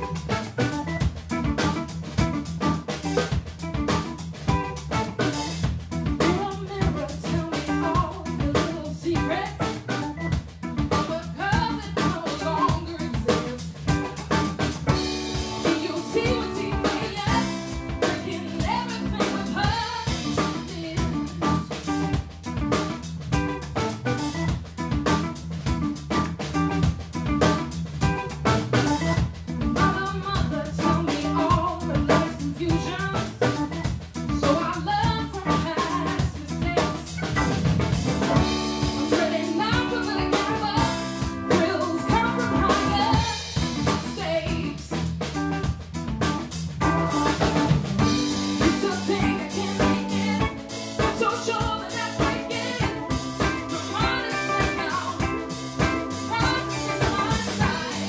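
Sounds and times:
organ: 0.0s - 6.5s, 13.3s - 30.6s, 35.4s - 58.0s
drum kit beat with rimshots: 0.0s - 58.0s
electric guitar: 0.0s - 58.0s
woman singing: 6.0s - 10.1s, 10.7s - 13.6s, 15.3s - 22.1s, 29.7s - 37.3s, 38.4s - 45.0s, 48.1s - 58.0s.

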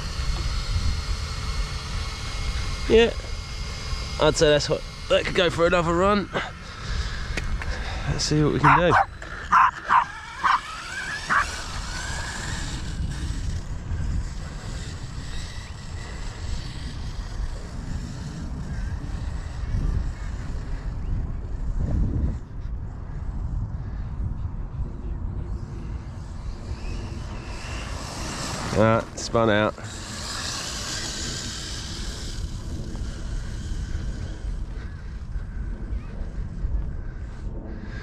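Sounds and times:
low steady rumble: 0.0s - 38.0s
small dog barking: 8.6s - 10.7s, 11.3s - 11.5s.

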